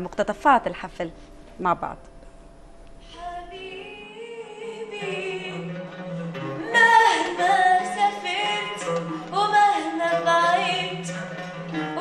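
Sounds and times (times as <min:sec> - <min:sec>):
musical accompaniment: 0:00.0 - 0:12.0
girl singing into a microphone: 0:03.0 - 0:05.7, 0:06.6 - 0:11.2.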